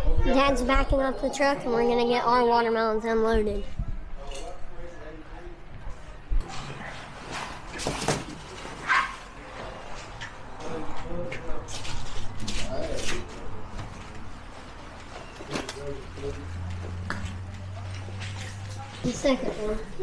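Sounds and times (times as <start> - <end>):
plastic tarp crinkling: 6.5 - 10.0.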